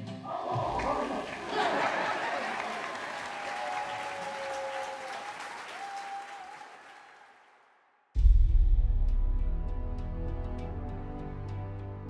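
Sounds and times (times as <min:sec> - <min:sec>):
audience applauding: 0:00.3 - 0:07.8.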